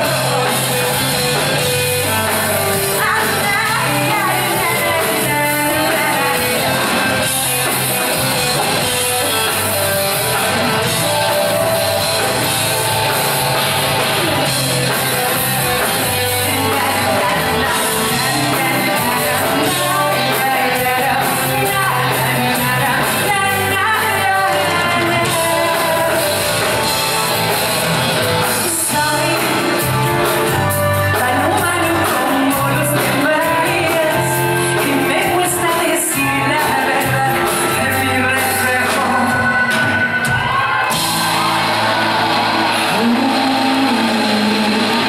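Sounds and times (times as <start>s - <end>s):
bass guitar: 0.0s - 45.0s
drums: 0.0s - 45.0s
electric guitar: 0.0s - 45.0s
live pop-rock band playing: 0.0s - 45.0s
woman singing: 1.9s - 8.2s, 14.8s - 26.9s, 28.5s - 40.5s, 42.9s - 45.0s.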